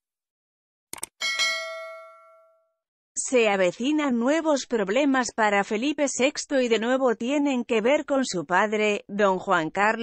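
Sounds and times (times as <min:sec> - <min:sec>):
bell ding: 0:01.2 - 0:02.8.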